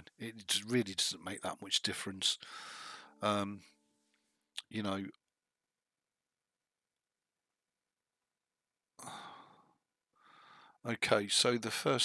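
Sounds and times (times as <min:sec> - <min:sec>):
person breathing out: 0:02.4 - 0:03.2, 0:09.0 - 0:10.8.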